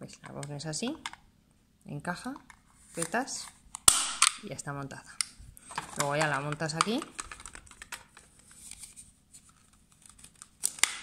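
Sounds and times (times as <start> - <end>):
plastic parts clicking: 5.2 - 8.3.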